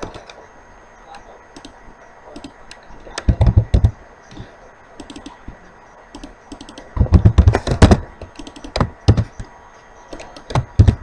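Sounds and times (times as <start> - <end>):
typing on computer keyboard: 1.6 - 4.0, 5.0 - 5.4, 6.1 - 9.5, 10.1 - 11.0.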